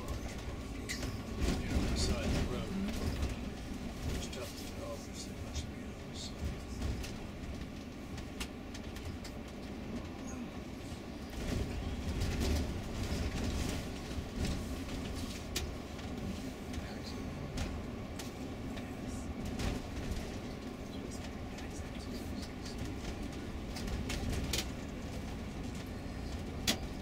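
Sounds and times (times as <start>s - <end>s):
bus engine and road rumble: 0.0s - 27.0s
light rattles and clicks: 0.0s - 27.0s.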